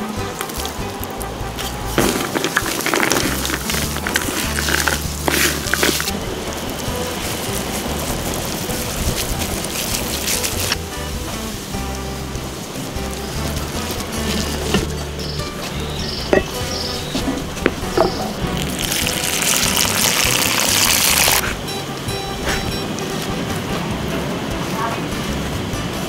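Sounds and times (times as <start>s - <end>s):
background music: 0.0s - 26.0s
hands squeezing wet vegetable filling: 0.4s - 21.5s.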